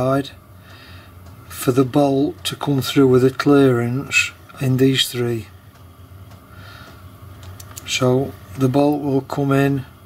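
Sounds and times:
person speaking: 1.4 - 5.6, 7.6 - 10.0.

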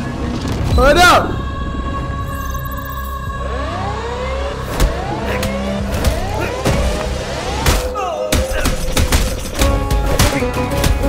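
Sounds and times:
low drone: 0.0 - 8.7.

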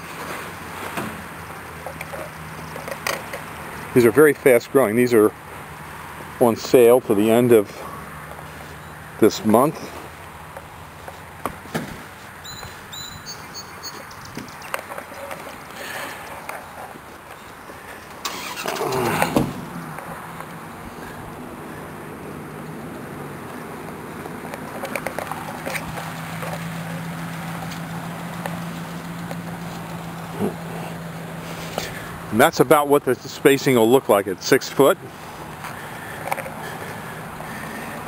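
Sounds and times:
motor vehicle engine: 0.0 - 38.0.

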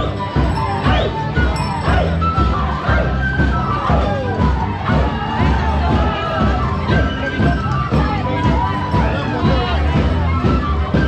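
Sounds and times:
voices singing together: 0.0 - 7.3
street band instruments: 0.0 - 11.0.

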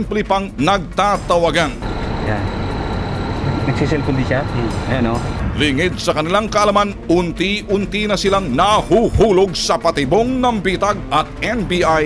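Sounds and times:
constant high-pitched tone: 1.6 - 6.0
vehicle engine idling: 1.8 - 5.9.

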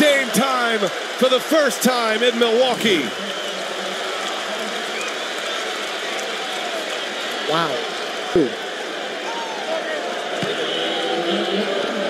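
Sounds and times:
crowd cheering: 0.0 - 12.0.

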